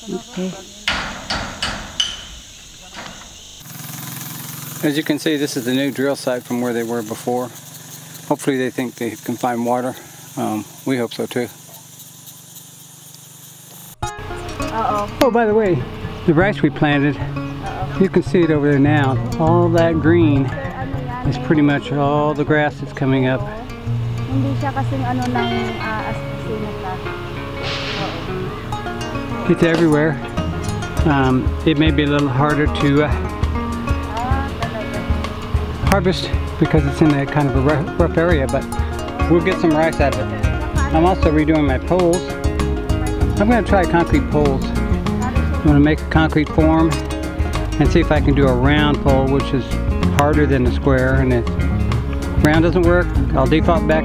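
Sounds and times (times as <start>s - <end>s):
steady engine hum: 0.0s - 54.0s
hammer strikes ringing metallic: 0.8s - 3.4s
acoustic guitar music: 3.1s - 54.0s
brief hiss: 27.6s - 29.1s.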